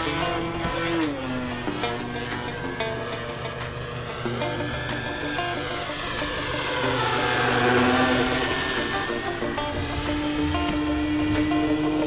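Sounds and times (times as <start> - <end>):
background music: 0.0 - 12.0
model plane motor whine: 0.0 - 12.0.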